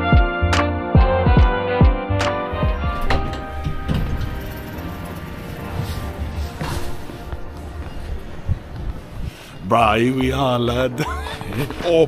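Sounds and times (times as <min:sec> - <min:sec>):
background music: 0:00.0 - 0:12.0
low rumble: 0:02.5 - 0:09.3.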